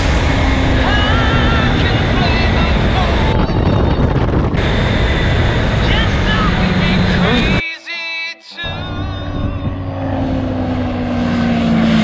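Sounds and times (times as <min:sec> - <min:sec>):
motorbike engine hum: 0:00.0 - 0:07.6, 0:08.6 - 0:12.0
wind noise on microphone: 0:00.0 - 0:07.6, 0:08.9 - 0:10.0.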